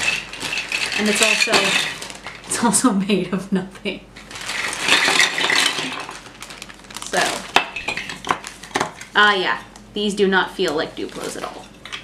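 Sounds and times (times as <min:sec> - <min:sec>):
plastic toy blocks clattering: 0:00.0 - 0:02.4, 0:04.4 - 0:06.2
plastic bag crinkling: 0:00.0 - 0:02.7, 0:04.2 - 0:09.8, 0:10.6 - 0:11.9.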